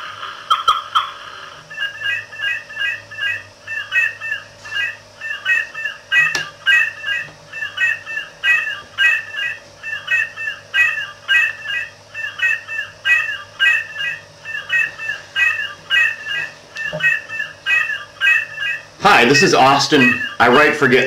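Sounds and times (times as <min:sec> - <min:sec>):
looped electronic bird chirping: 0:00.2 - 0:21.0.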